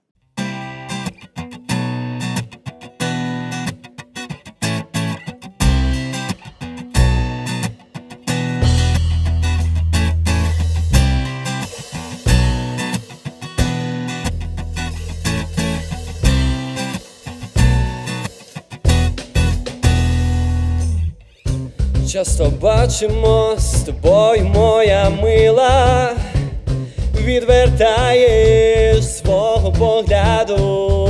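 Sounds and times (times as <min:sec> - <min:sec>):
acoustic guitar strumming: 0:00.3 - 0:31.0
bass guitar: 0:00.4 - 0:03.8, 0:04.4 - 0:31.0
drums keeping time: 0:05.6 - 0:31.0.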